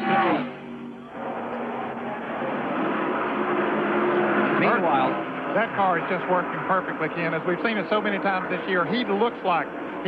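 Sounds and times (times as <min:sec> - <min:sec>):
race car engines running flat out: 0:00.0 - 0:10.0.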